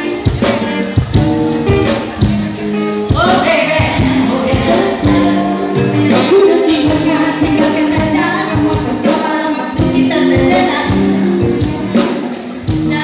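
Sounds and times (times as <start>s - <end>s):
band playing: 0.0s - 13.0s
steady drum beat: 0.0s - 13.0s
group of singers singing: 3.2s - 12.2s.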